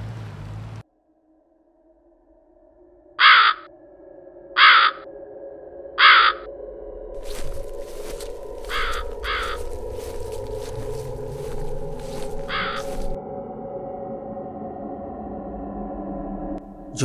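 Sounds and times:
low eerie drone: 0.0s - 17.0s
crow cawing: 3.2s - 3.7s, 4.6s - 5.0s, 6.0s - 6.5s, 7.2s - 13.2s.

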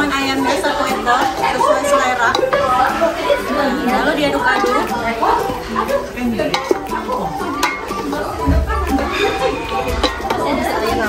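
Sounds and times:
background music: 0.0s - 11.0s
background voices: 0.3s - 11.0s
spatula stirring chicken in pot: 4.3s - 10.9s
spatula clicking against pot: 6.5s - 8.1s.

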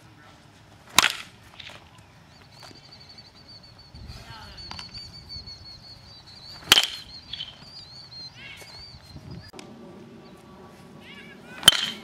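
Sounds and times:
bat cracking a baseball: 0.9s - 1.9s, 6.6s - 7.7s, 11.5s - 12.0s.

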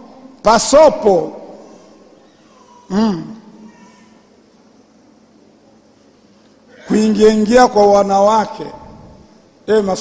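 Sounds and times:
man's vocal sound through microphone: 2.9s - 3.5s.

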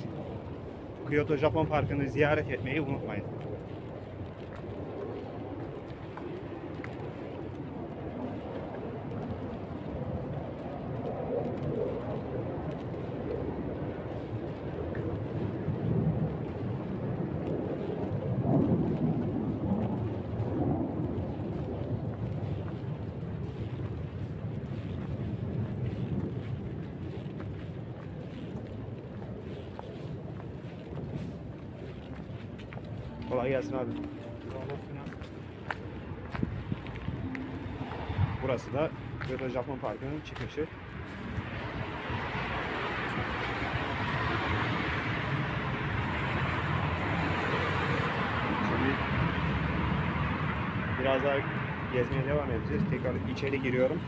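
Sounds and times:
wind rumble: 0.0s - 54.0s
faint voices: 32.8s - 36.3s.

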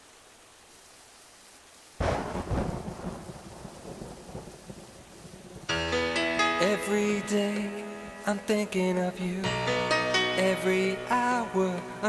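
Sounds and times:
rain hiss: 0.0s - 12.0s
thunderclap rolling: 2.0s - 5.7s
music with held tones: 5.7s - 12.0s.

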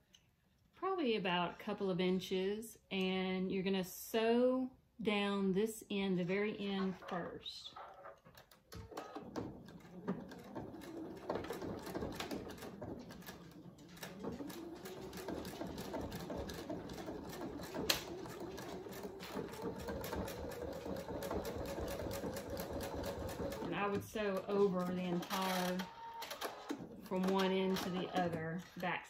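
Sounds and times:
sewing machine stitching: 6.6s - 29.0s.

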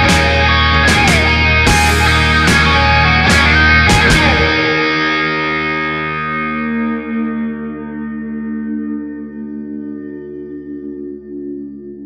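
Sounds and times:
distorted electric guitar chord ringing: 0.0s - 11.8s.

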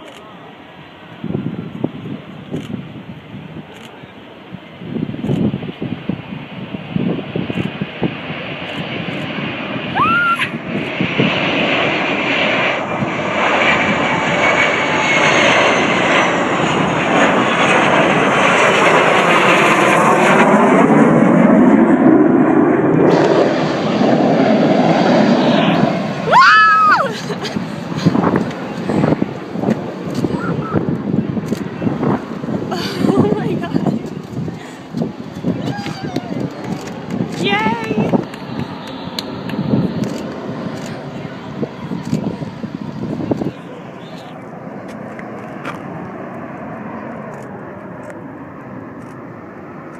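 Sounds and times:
jet aircraft flying low overhead: 0.0s - 49.9s.

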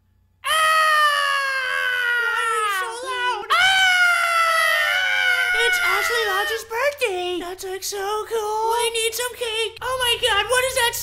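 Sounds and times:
cartoon character screaming: 0.4s - 6.7s.

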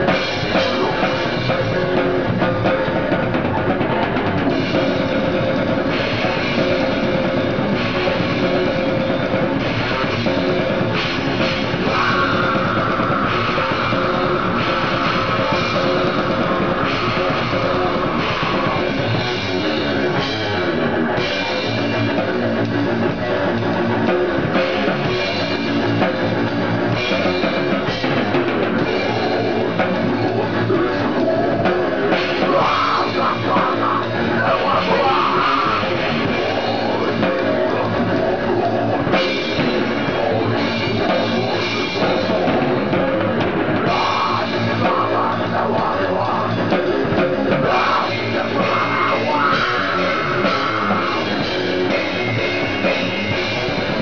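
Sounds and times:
distorted guitar: 0.0s - 54.0s
drum kit pounding: 0.0s - 54.0s.

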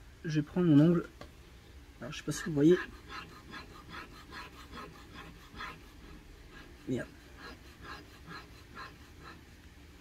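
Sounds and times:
fingers rubbing rubbery coating: 2.5s - 9.6s.

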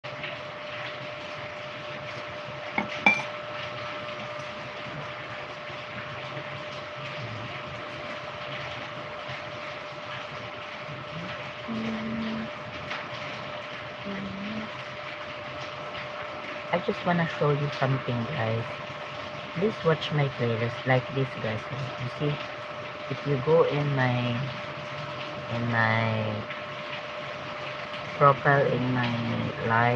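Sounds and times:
steady background hum: 0.1s - 29.9s
spoon clinking on ceramic mug: 2.8s - 3.3s.

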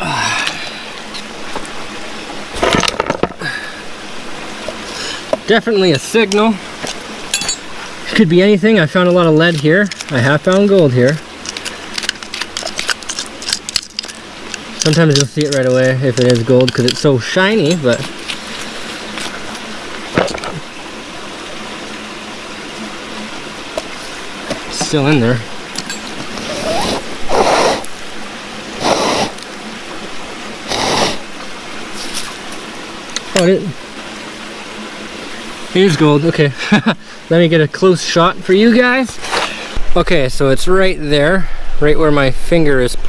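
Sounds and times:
metal pick scraping rock: 6.3s - 7.8s, 8.9s - 20.6s, 24.5s - 27.9s.

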